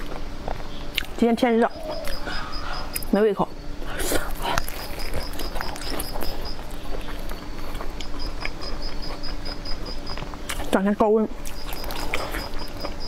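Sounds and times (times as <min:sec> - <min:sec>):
close chewing with mouth clicks: 0:00.0 - 0:03.1, 0:03.8 - 0:10.8, 0:11.4 - 0:13.0.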